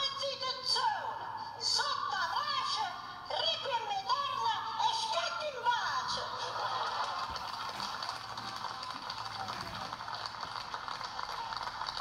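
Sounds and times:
audience applauding: 6.7 - 12.0.

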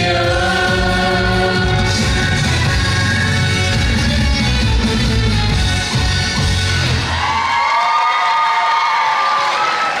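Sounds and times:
trot dance music with heavy bass: 0.0 - 7.1
crowd cheering: 6.8 - 10.0.

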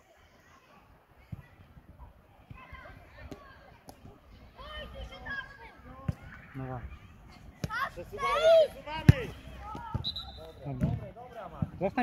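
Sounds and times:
children shouting: 7.6 - 10.0.

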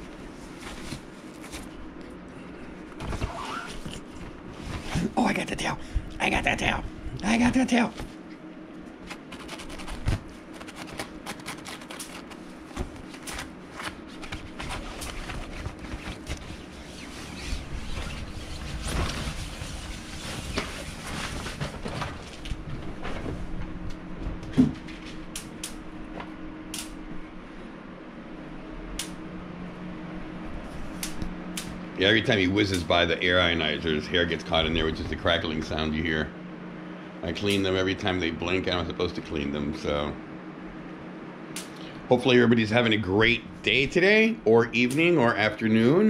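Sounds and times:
fox rustling and scratching fabric: 0.0 - 2.0, 2.8 - 5.4, 8.9 - 23.8
steady low hum: 0.0 - 46.0
air ionizer crackling snaps: 25.2 - 25.9, 26.7 - 27.0, 28.9 - 29.2, 30.9 - 31.9, 37.4 - 37.7, 40.8 - 41.9.

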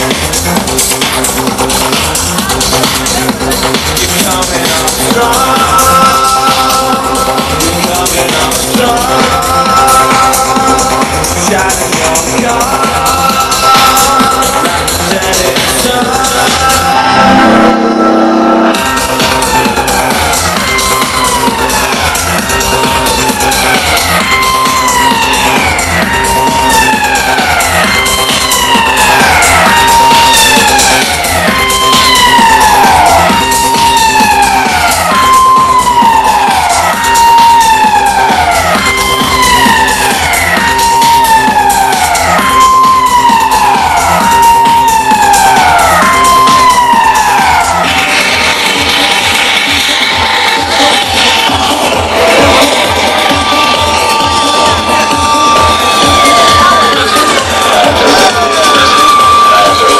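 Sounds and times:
electronic dance music: 0.0 - 59.9
siren-like synth wail: 0.2 - 59.9.

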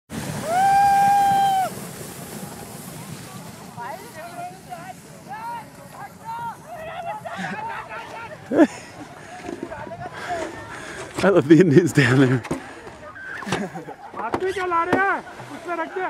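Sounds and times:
sled sliding on snow: 0.1 - 16.0.

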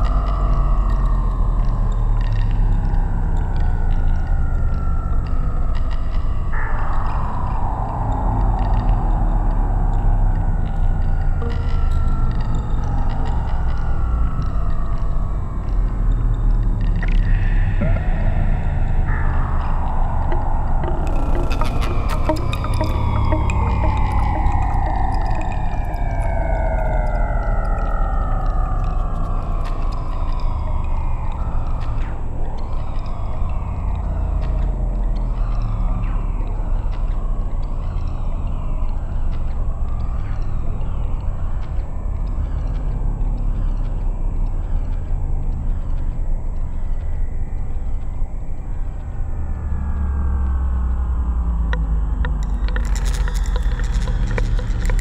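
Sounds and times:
faint soft ticks: 0.0 - 18.1, 19.1 - 55.0
deep bass drone: 0.0 - 55.0
high tone sliding downward: 17.5 - 31.7, 49.1 - 55.0.

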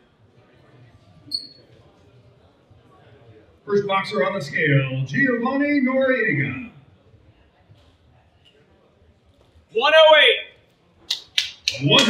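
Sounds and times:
short high-pitched squeak: 1.3 - 1.7
room noise: 3.6 - 12.0.

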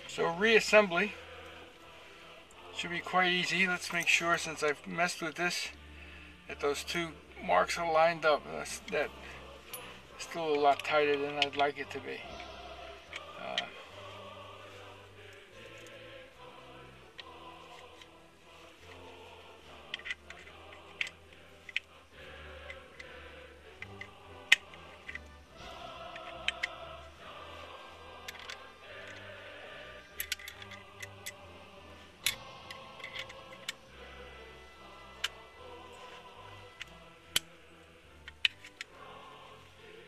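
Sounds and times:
background music: 0.0 - 40.0
metallic clicks of revolver parts: 19.7 - 21.9, 23.8 - 25.4, 26.1 - 26.8, 28.2 - 29.2, 30.1 - 31.4, 32.2 - 33.8, 36.7 - 37.6, 38.2 - 39.0.

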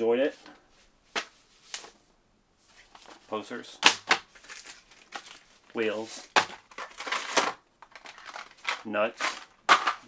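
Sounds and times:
packaging crinkling: 3.8 - 5.5, 6.2 - 10.0
person speaking: 5.7 - 6.5.

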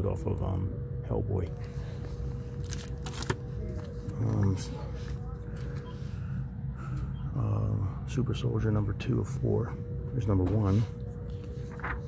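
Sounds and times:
comic book pages rustling: 2.0 - 5.3, 10.7 - 12.0.

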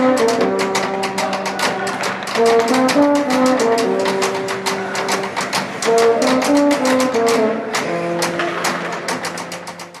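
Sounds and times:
brass chord: 2.3 - 4.7.

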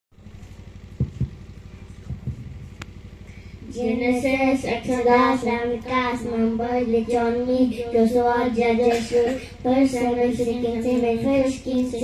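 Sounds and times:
engine idling: 0.2 - 12.0
microphone handling thumps: 0.4 - 3.0.

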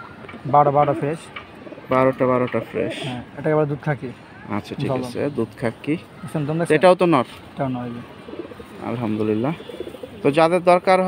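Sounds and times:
pigeons cooing: 0.0 - 3.3, 7.9 - 10.4.

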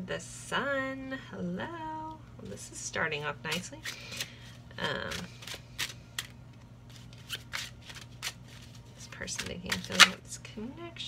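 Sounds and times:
cards being shuffled: 3.5 - 10.2.

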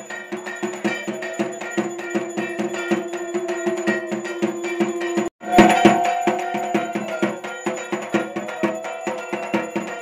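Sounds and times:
struck metal beaten in rhythm: 0.0 - 10.0.

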